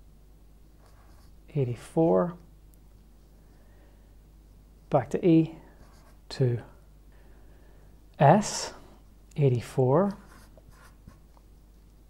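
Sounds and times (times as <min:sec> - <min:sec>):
marker writing on paper: 0:10.1 - 0:11.3.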